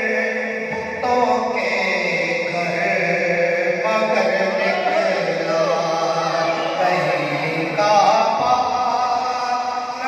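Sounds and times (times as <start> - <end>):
man chanting into microphone: 0.0 - 10.0.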